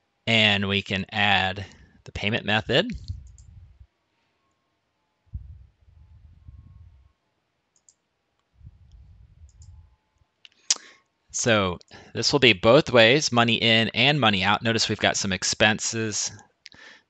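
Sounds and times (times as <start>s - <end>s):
low rumbling noise: 0.7s - 3.8s, 5.3s - 7.0s, 8.6s - 10.0s
computer mouse clicks: 3.0s - 3.5s, 7.8s - 8.0s.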